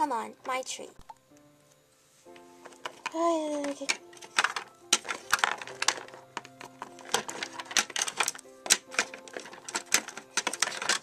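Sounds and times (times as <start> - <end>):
soft background music: 0.0 - 11.0
plastic toys clicking on table: 2.7 - 11.0.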